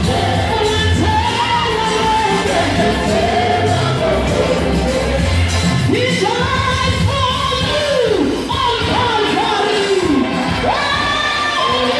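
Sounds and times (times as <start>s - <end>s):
band with strong bass: 0.0s - 11.9s
lead and backing singers: 0.0s - 11.9s.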